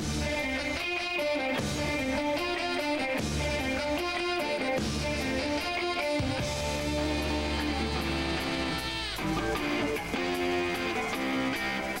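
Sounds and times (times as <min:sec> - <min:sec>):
bass guitar: 0:00.0 - 0:12.0
drums: 0:00.0 - 0:12.0
strummed electric guitar: 0:00.0 - 0:12.0.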